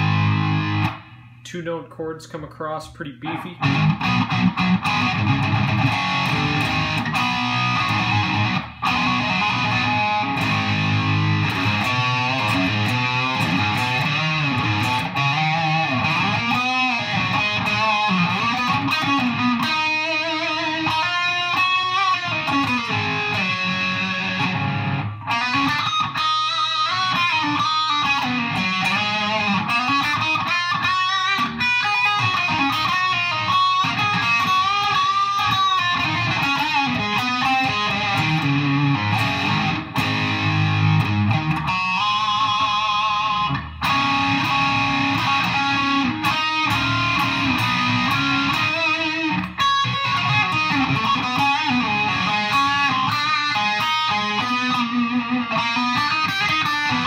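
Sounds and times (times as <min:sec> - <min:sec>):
distorted electric guitar riffs: 0:00.0 - 0:57.0.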